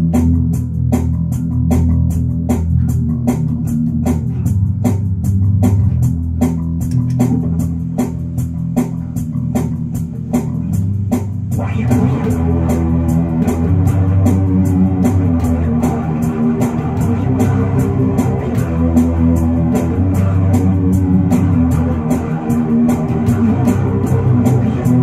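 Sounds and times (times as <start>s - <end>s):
electric bass guitar line: 0.0s - 25.0s
steady sharp ticks: 6.8s - 7.4s.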